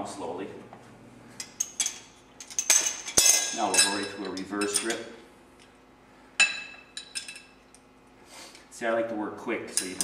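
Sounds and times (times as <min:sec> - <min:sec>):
metal clinking and rattling: 0:01.4 - 0:05.0.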